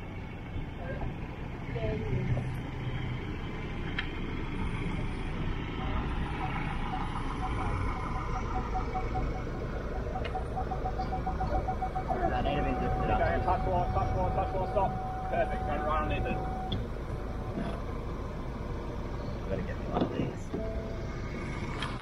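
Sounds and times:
pickup engine running low: 0.0 - 22.0
parking sensor beeps: 5.7 - 16.9, 20.5 - 21.4.

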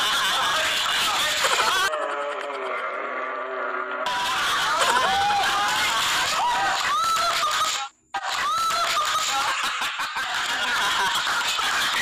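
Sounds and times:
man laughing loudly: 8.8 - 12.0.

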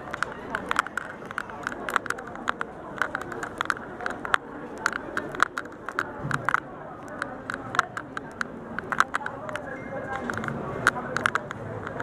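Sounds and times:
murmur of diners chatting: 0.0 - 12.0
sharp clicks and clatter: 0.0 - 12.0.

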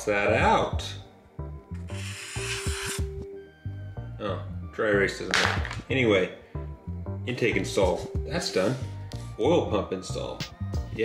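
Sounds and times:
background music with bass: 0.0 - 11.0
marker scratching on cardboard: 1.9 - 3.1.

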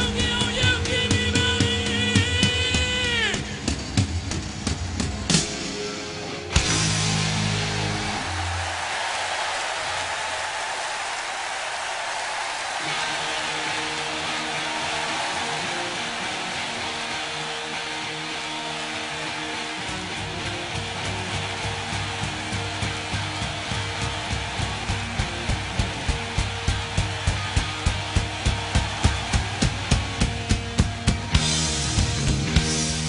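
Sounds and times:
held guitar chords: 12.8 - 33.0
bass drum beat: 20.0 - 33.0.

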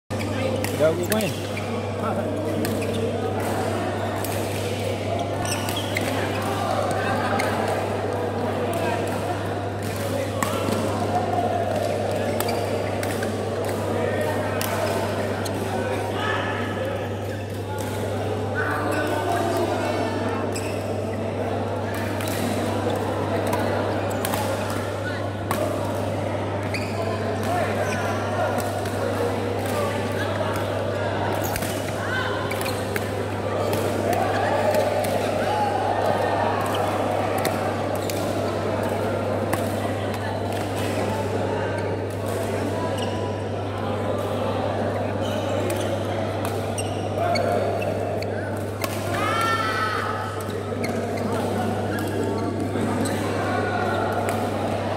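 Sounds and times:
chatter of voices: 0.1 - 54.9.

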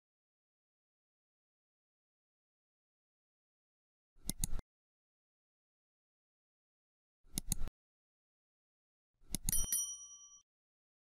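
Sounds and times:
mouse clicks: 4.2 - 4.6, 7.3 - 7.7, 9.3 - 9.6
bell ding: 9.5 - 10.4.

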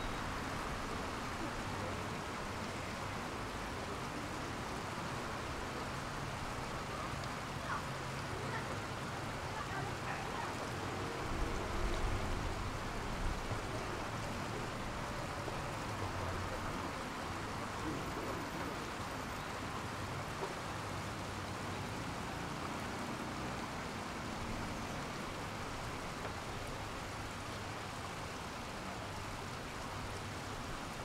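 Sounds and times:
fountain jets hissing: 0.0 - 31.0
low rumble of road traffic: 0.0 - 31.0
water running over rocks: 0.0 - 31.0.

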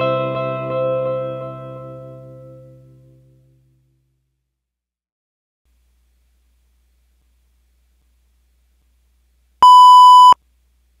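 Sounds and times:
loud electronic beep: 9.6 - 10.4.

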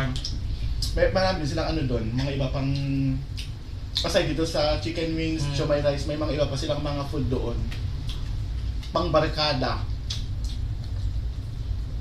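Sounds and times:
low background rumble: 0.0 - 12.0
eating smacks: 7.7 - 9.0, 10.0 - 11.6.

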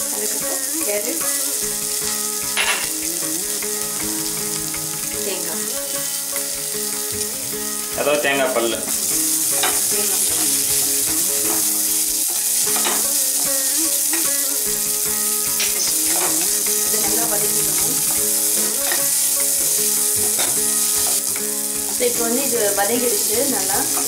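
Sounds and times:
vegetables sizzling in oil: 0.0 - 24.0
spatula scraping and knocking pan: 1.6 - 24.0.

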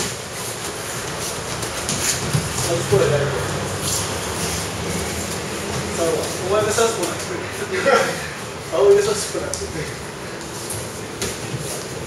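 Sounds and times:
feet shuffling: 0.0 - 12.0
steady background noise: 0.0 - 12.0.

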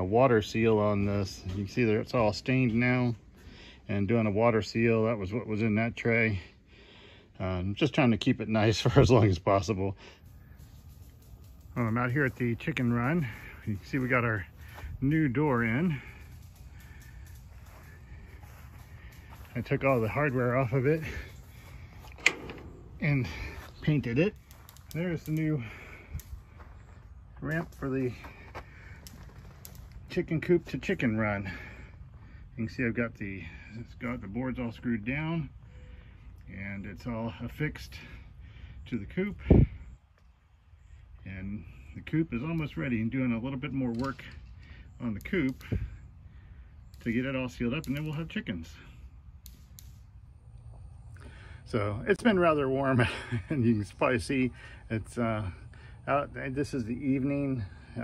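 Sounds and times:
low rumble: 14.5 - 27.8
metal latch click: 22.1 - 23.0.

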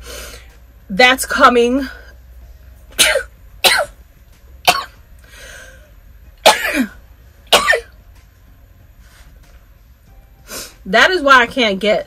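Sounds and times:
woman coughing: 3.0 - 4.0, 4.7 - 5.0, 6.4 - 7.9.

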